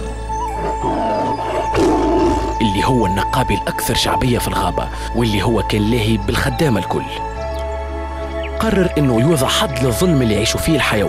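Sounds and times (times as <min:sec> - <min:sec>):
background music with held high note: 0:00.0 - 0:11.0
big cat roar: 0:00.5 - 0:02.7.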